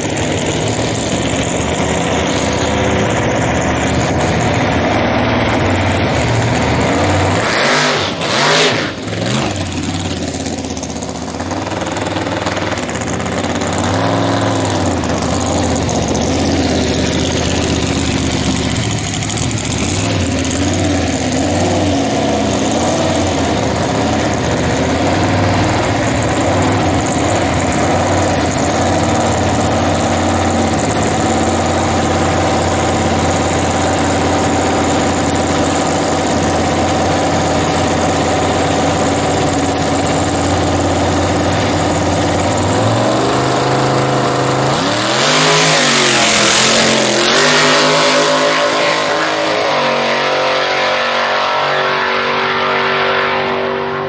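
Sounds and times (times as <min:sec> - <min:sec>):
drag car engine idling and revving: 0:00.0 - 0:54.0.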